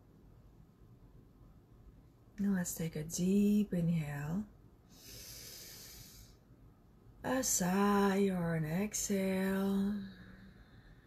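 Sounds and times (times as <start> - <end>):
woman breathing in deeply: 4.9 - 6.5, 10.1 - 11.0.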